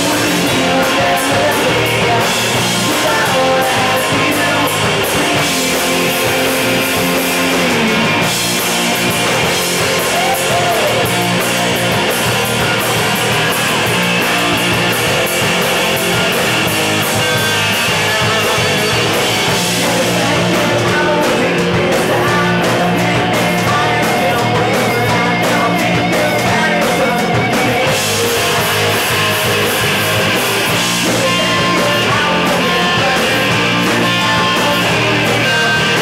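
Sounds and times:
live rock band playing: 0.0s - 36.0s.

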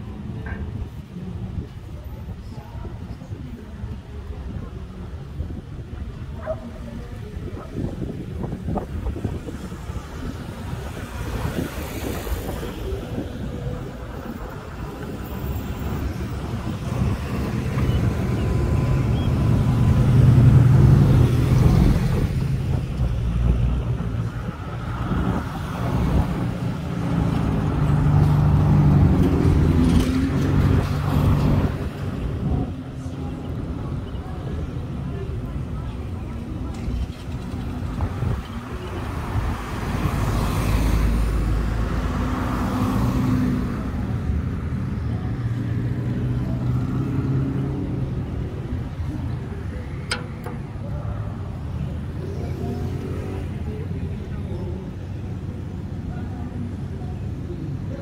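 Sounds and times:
cars and van passing: 0.0s - 58.0s.

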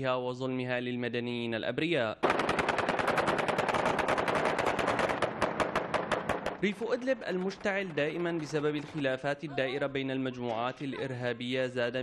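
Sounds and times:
automatic weapon burst: 2.2s - 6.6s.

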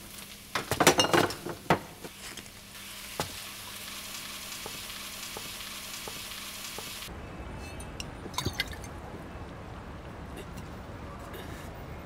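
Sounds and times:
food frying sizzle: 0.0s - 7.1s.

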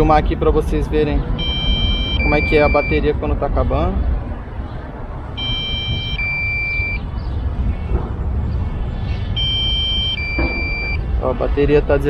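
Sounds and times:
two-tone electronic beeps: 1.4s - 3.0s, 5.4s - 7.0s, 9.4s - 11.0s.

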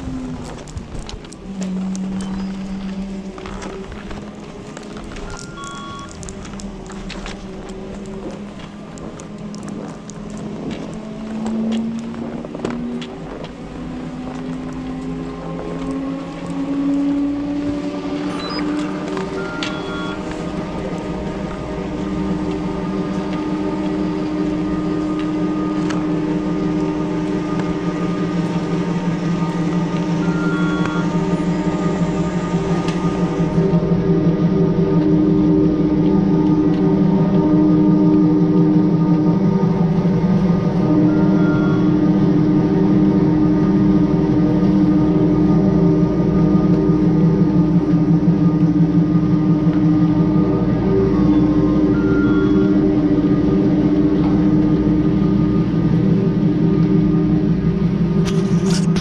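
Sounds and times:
chairlift machinery drone: 0.0s - 59.0s
snowblower working: 0.0s - 59.0s.

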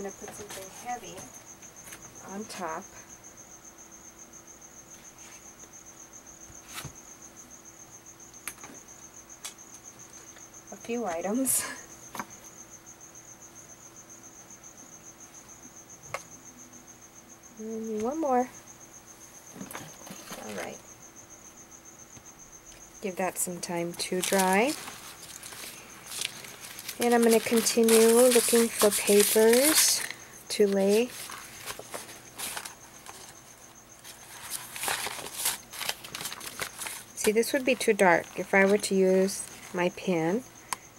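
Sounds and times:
insect chirping: 0.0s - 40.9s
paper sheets rustling: 24.1s - 33.4s, 34.0s - 37.1s.

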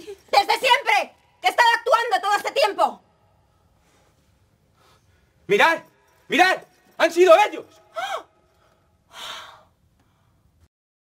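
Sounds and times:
sharp gasp: 7.9s - 10.5s.

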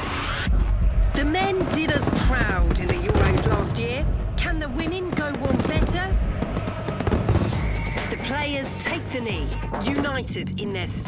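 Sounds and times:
fireworks bangs and crackles: 0.6s - 10.4s.

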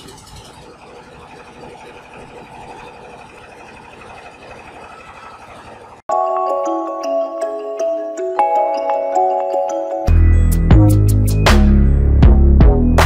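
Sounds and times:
engine idling: 0.0s - 6.1s.

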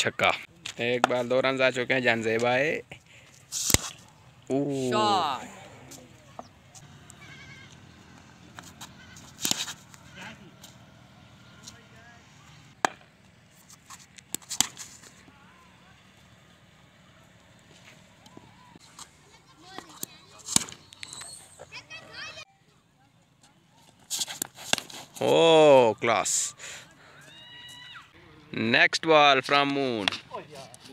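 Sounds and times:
voices calling: 0.0s - 24.1s, 25.1s - 30.9s
cricket bat striking ball: 12.8s - 13.2s.

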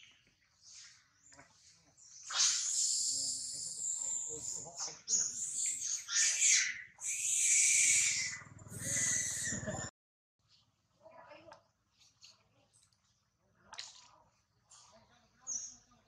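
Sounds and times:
monkeys screaming: 2.2s - 9.9s.

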